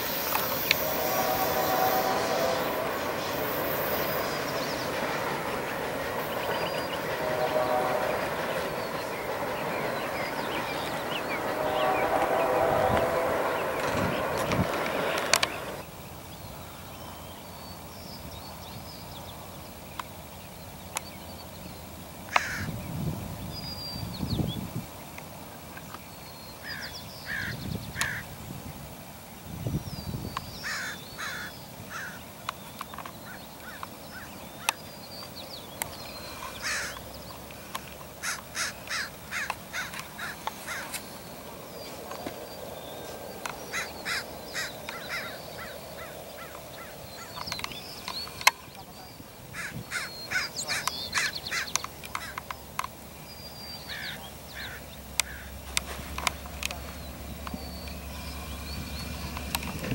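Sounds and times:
birds harsh calls: 0:22.3 - 0:22.7, 0:26.6 - 0:28.2, 0:30.6 - 0:32.3, 0:35.8 - 0:52.6, 0:53.5 - 0:59.4.

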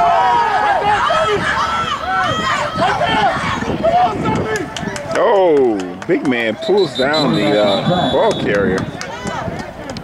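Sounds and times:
voices shouting and cheering: 0:00.0 - 0:10.0.

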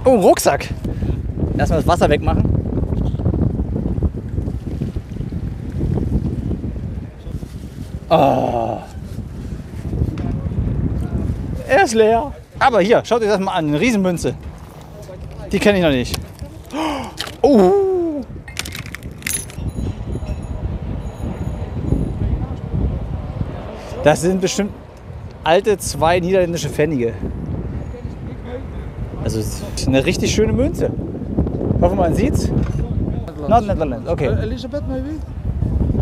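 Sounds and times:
wind buffeting microphone: 0:00.0 - 0:36.0
small metal objects clicking: 0:18.5 - 0:19.7.

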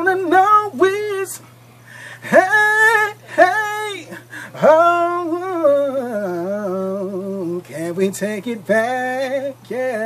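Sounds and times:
man singing unaccompanied: 0:00.0 - 0:01.5, 0:02.1 - 0:10.0.

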